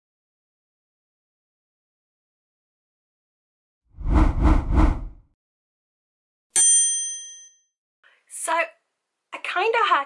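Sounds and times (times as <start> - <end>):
bright bell-like ding: 6.6 - 7.7.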